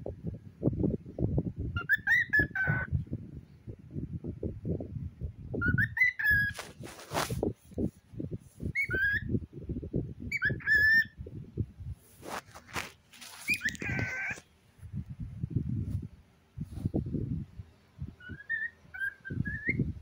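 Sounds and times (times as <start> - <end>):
cockatiel chirping: 1.8 - 2.9, 5.6 - 6.6, 8.7 - 9.3, 10.3 - 11.2, 13.3 - 14.4, 18.2 - 19.9
handling thumps and rustling: 6.5 - 7.9, 12.2 - 14.4.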